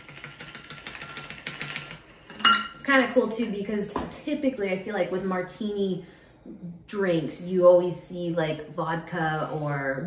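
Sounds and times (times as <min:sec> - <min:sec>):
ice rattling in cocktail shaker: 0:00.0 - 0:02.0.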